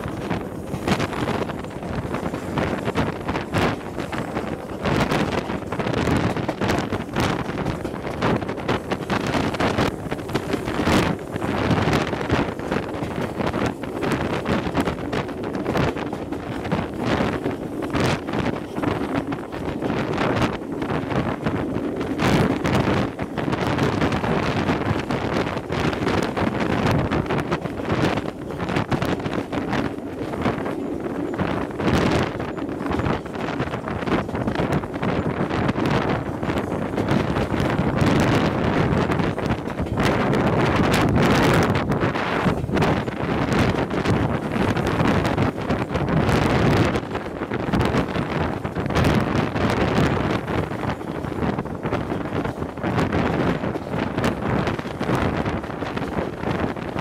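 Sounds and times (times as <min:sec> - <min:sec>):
train running rumble: 0:00.0 - 0:57.0
wind buffeting microphone: 0:00.0 - 0:57.0.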